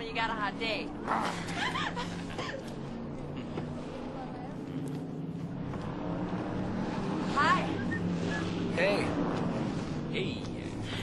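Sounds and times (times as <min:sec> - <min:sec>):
car engine running at low revs: 0:00.0 - 0:11.0.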